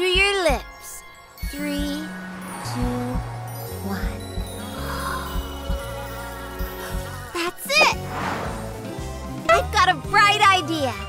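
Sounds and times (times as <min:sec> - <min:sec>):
cartoon background music: 0:00.0 - 0:11.0
short whoosh: 0:07.9 - 0:09.2.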